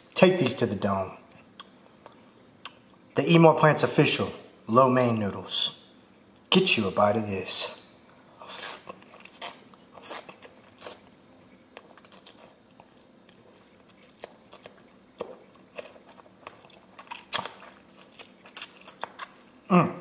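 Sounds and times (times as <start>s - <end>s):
person chewing and slurping noodles: 8.4s - 19.4s.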